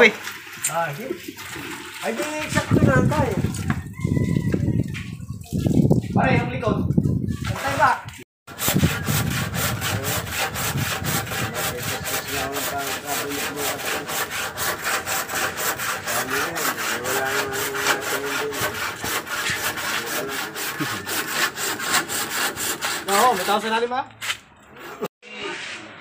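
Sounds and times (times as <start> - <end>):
handsaw cutting wood: 8.5 - 23.8.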